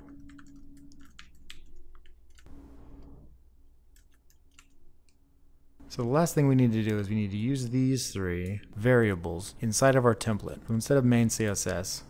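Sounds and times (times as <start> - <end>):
typing on computer keyboard: 0.0 - 2.5, 3.9 - 4.8.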